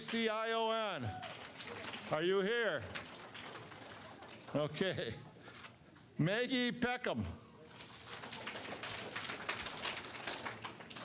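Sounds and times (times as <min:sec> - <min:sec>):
audience rustling and shuffling: 0:01.0 - 0:06.2, 0:07.6 - 0:11.0.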